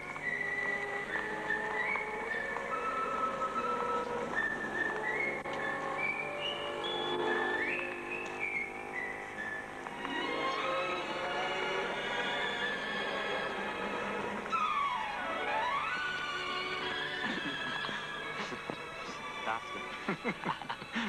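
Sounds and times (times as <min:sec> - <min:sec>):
light instrumental accompaniment: 0:00.0 - 0:21.0
whistled melody: 0:00.0 - 0:21.0.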